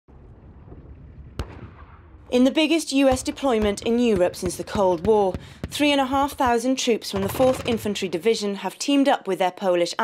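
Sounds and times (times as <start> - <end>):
distant gunshot: 1.3 - 2.2, 3.1 - 6.6, 7.2 - 8.1.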